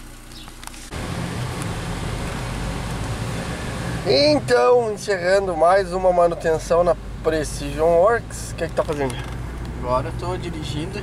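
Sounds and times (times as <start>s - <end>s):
car engine and tyres droning: 0.0s - 11.0s.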